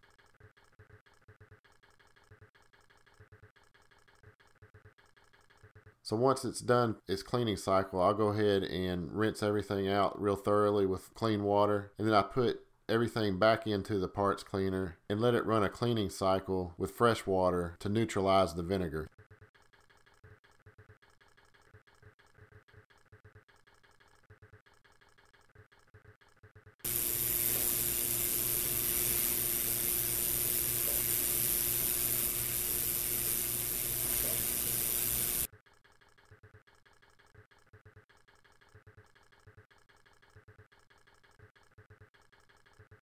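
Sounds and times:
ultrasonic cleaner hissing and humming: 26.9s - 35.5s.

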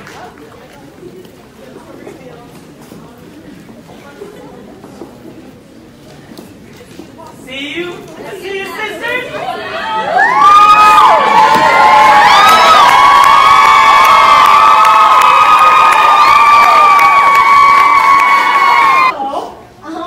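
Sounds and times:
crowd cheering and shrieking: 9.5s - 19.2s.

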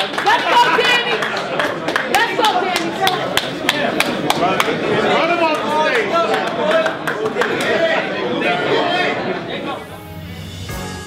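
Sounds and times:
people talking: 0.2s - 10.1s.

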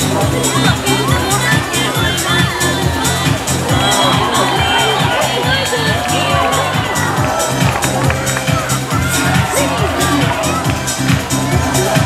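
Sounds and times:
crowd voices: 0.0s - 12.0s
loud music with steady beat: 0.0s - 12.0s.

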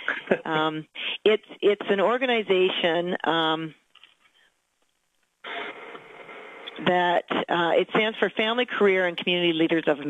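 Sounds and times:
person's voice: 0.0s - 3.8s, 6.7s - 10.0s
telephone line hiss: 5.4s - 6.8s.

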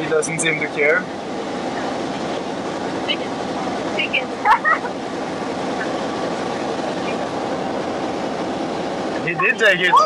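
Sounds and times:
ship machinery rumble and hiss: 0.0s - 10.0s.

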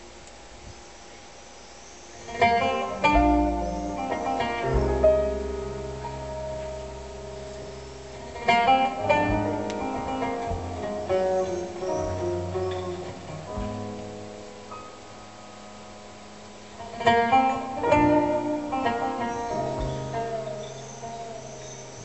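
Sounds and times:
plucked oud notes: 2.4s - 14.4s, 16.9s - 22.0s
deep sustained low notes: 2.4s - 22.0s.

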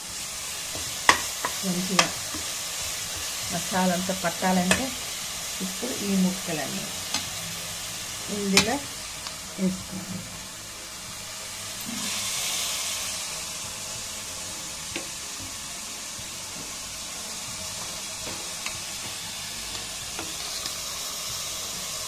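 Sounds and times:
food sizzling in a pot: 0.0s - 22.0s.

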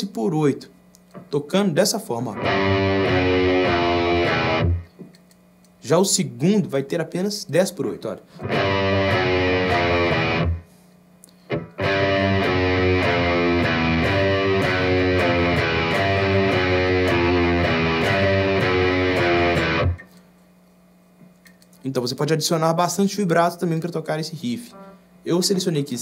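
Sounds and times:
faint amplifier hum: 0.0s - 26.0s
distorted electric guitar riff: 2.4s - 4.9s, 8.4s - 10.7s, 11.5s - 20.1s.

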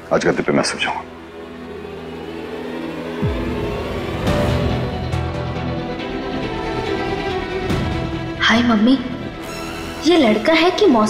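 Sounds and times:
sustained synthesizer tones: 1.0s - 11.0s.

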